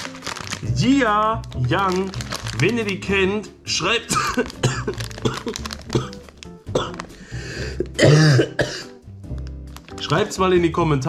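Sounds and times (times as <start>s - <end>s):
background music: 0.0s - 11.0s
man coughing: 4.1s - 6.2s, 6.8s - 7.0s, 7.7s - 8.9s.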